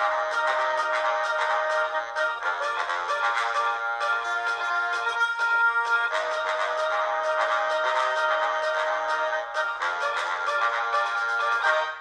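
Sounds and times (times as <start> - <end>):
instrumental children's music: 0.0 - 12.0.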